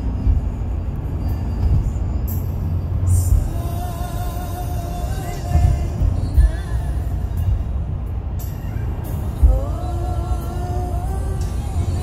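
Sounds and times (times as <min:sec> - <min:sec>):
car cabin road and engine rumble: 0:00.0 - 0:12.0
music playing: 0:00.0 - 0:12.0.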